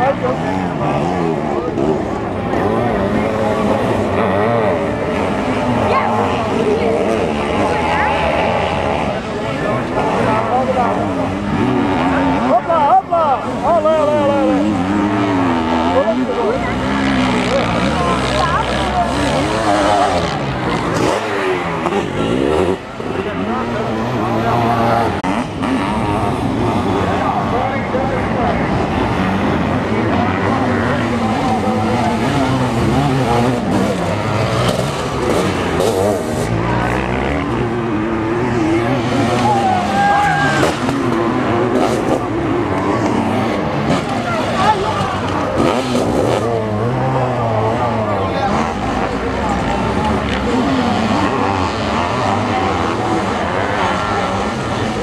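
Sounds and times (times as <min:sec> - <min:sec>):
motorcycle engines revving: 0:00.0 - 0:55.0.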